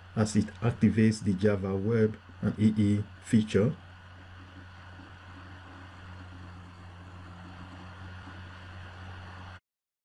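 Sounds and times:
faint hiss: 0:00.0 - 0:09.6
low hum: 0:00.0 - 0:09.6.

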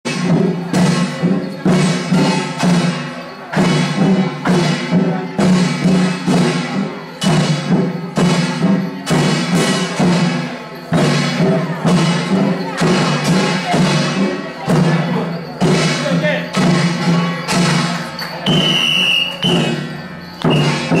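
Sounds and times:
drums and percussion beat: 0:00.0 - 0:21.0.

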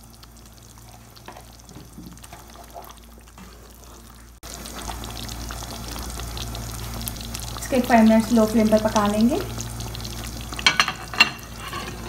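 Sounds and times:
curry simmering and popping: 0:00.0 - 0:11.8
curry sizzling and spitting: 0:00.0 - 0:12.0.

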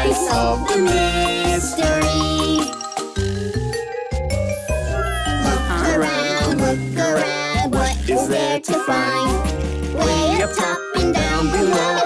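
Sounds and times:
children's song music: 0:00.0 - 0:12.0.

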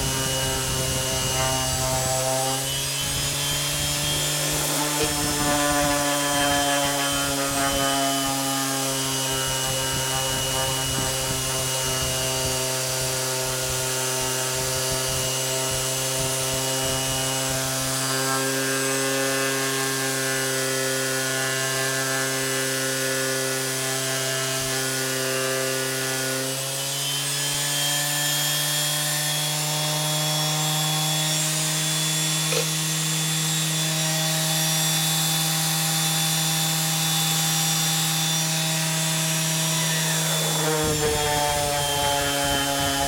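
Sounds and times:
sandpaper rubbing on wood: 0:00.0 - 0:13.9
orbital sander motor hum: 0:00.0 - 0:43.0.

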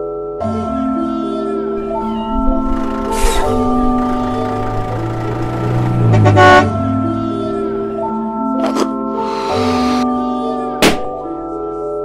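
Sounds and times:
truck engine rumble: 0:01.8 - 0:10.0
truck horn toot: 0:03.1 - 0:07.3.

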